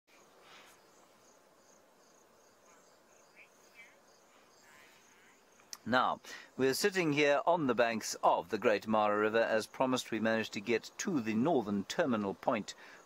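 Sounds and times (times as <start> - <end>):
faint insect chirping: 0.1 - 13.0.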